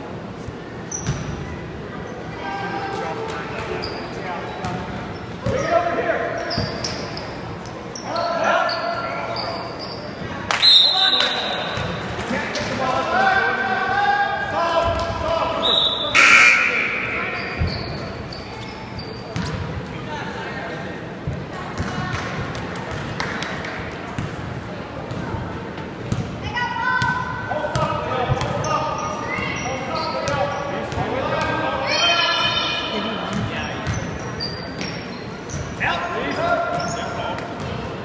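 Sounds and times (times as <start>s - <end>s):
people shouting and talking: 0.0s - 38.0s
sneakers squeaking: 0.4s - 2.3s, 3.3s - 12.2s, 14.8s - 20.0s, 24.1s - 26.4s, 27.0s - 38.0s.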